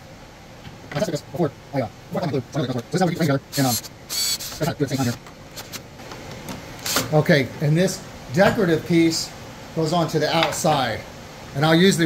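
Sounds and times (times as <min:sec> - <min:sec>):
cordless drill driving screw into wood: 0:03.5 - 0:05.8, 0:06.8 - 0:07.1.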